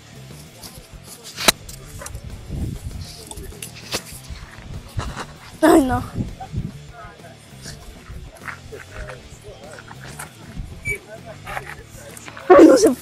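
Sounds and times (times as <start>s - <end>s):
faint human voices: 0.0s - 13.0s
brief high squeak: 10.8s - 11.1s.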